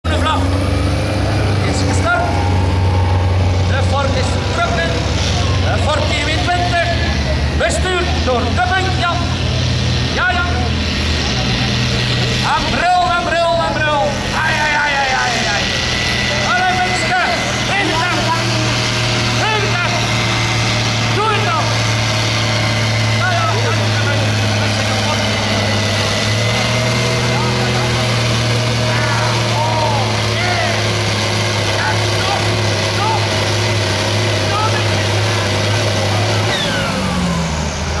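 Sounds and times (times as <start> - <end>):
tractor diesel engine under load: 0.0 - 38.0.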